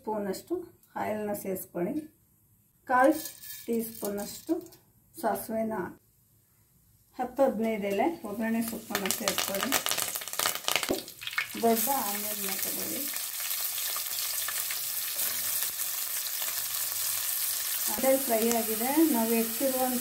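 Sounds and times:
onions sizzling: 0:07.4 - 0:20.0
leaves crackling in hot oil: 0:07.7 - 0:20.0.

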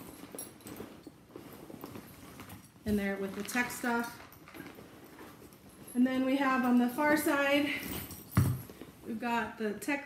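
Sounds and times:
rustling inside fabric handbag: 0:00.0 - 0:09.9.

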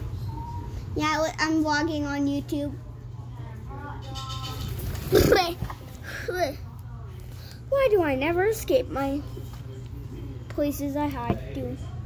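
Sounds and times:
low steady hum: 0:00.0 - 0:12.0
child talking: 0:01.0 - 0:02.8, 0:05.1 - 0:06.7, 0:07.7 - 0:09.3, 0:10.6 - 0:11.8.

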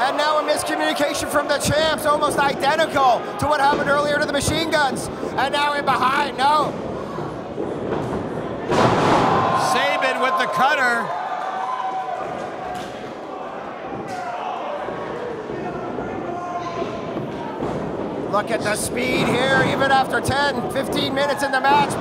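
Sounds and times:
body slamming on wrestling ring: 0:08.7 - 0:09.5.

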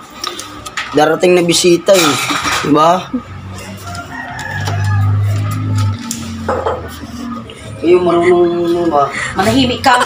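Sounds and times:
rooster crowing: 0:03.5 - 0:07.4.

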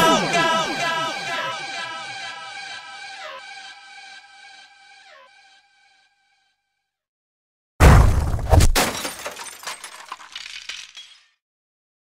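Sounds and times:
heavy impact with deep boom: 0:07.8 - 0:08.8
tinkling glass fragments: 0:09.2 - 0:11.4.

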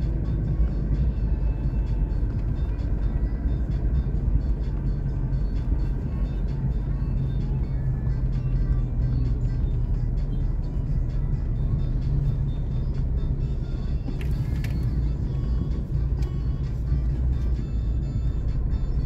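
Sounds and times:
music playing in car: 0:00.0 - 0:19.0
road and engine rumble: 0:00.0 - 0:19.0.

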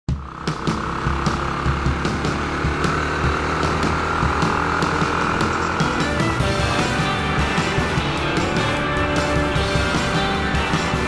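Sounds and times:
motorcycle engine running: 0:00.1 - 0:11.0.

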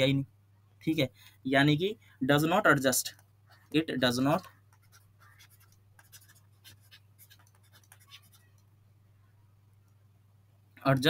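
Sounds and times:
man speaking: 0:00.0 - 0:04.5
stylus scratching on tablet: 0:03.5 - 0:08.7.

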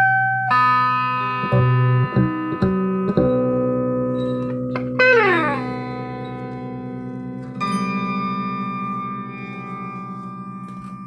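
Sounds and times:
electric guitar chord sustaining: 0:00.0 - 0:11.0
electric guitar sliding note: 0:01.5 - 0:08.0.

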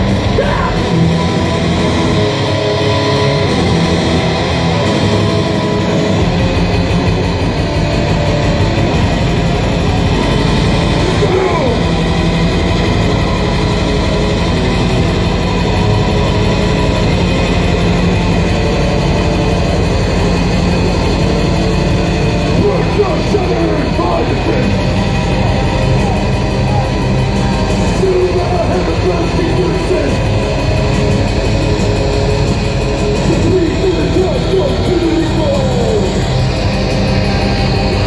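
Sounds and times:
harsh vocals: 0:00.0 - 0:09.3, 0:09.9 - 0:18.8, 0:19.5 - 0:31.4, 0:33.0 - 0:38.0
distorted guitars: 0:00.0 - 0:38.0
very fast drumming: 0:00.0 - 0:38.0.

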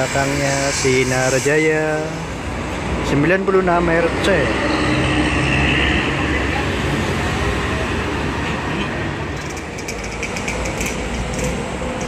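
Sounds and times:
vehicles moving: 0:00.0 - 0:12.0
bus engine and tyres driving off: 0:02.3 - 0:12.0.

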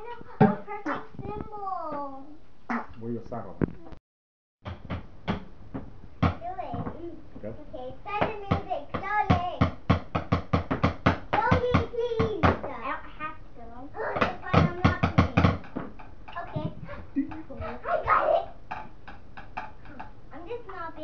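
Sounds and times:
child's voice: 0:00.0 - 0:02.4, 0:06.4 - 0:09.7, 0:11.4 - 0:15.7, 0:16.3 - 0:16.9, 0:17.6 - 0:18.6, 0:19.9 - 0:21.0.

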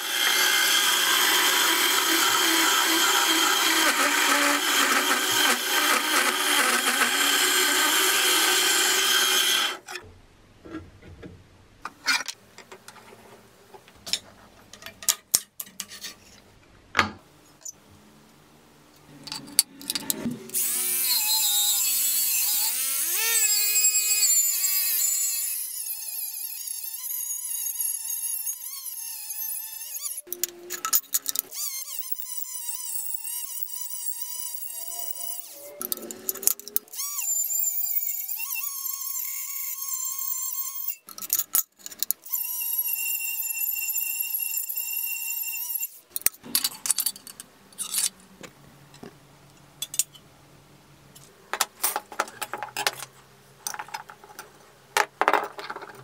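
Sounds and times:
drill motor whine: 0:00.0 - 0:09.8, 0:31.5 - 0:41.0.

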